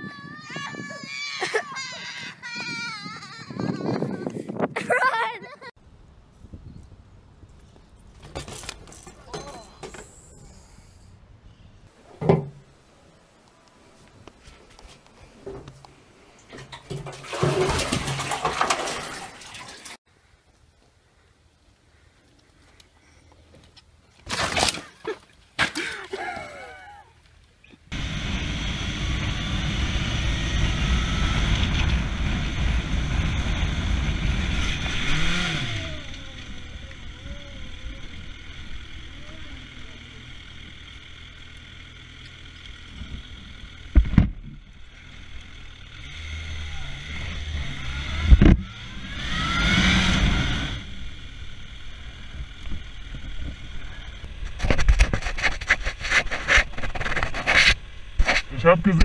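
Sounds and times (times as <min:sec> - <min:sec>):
wind noise on helmet: 0:00.0 - 0:01.3, 0:02.2 - 0:05.0, 0:06.0 - 0:08.1
motorcycle engine running: 0:27.9 - 0:54.6.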